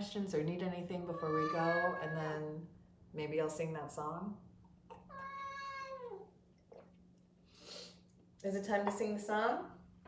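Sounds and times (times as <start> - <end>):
cat meowing: 1.1 - 2.3, 5.1 - 6.2.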